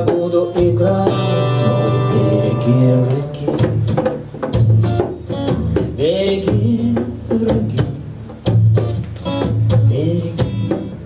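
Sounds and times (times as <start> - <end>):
man singing: 0.0 - 4.1, 5.9 - 8.2, 9.7 - 11.0
acoustic guitar reggae strumming: 0.0 - 11.0.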